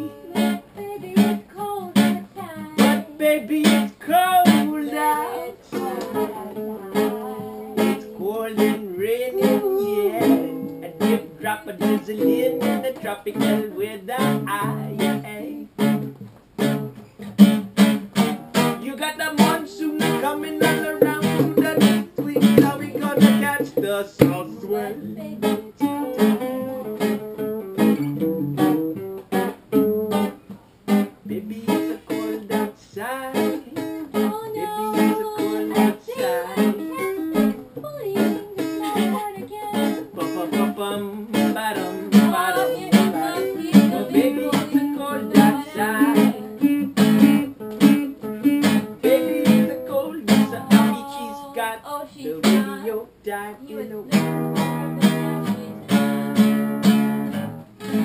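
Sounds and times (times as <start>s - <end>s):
acoustic guitars strumming: 0.0s - 58.0s.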